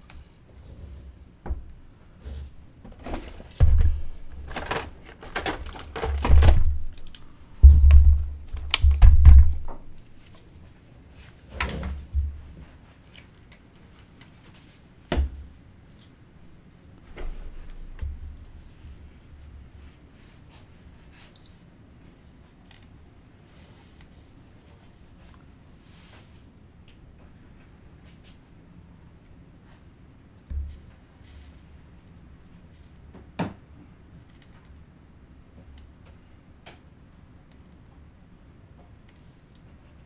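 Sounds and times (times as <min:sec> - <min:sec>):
dull thumps and clattering on bench: 0:07.6 - 0:09.9.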